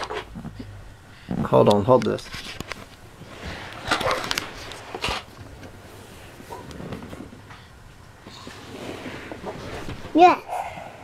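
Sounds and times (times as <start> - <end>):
faint rustling: 0.0 - 10.9.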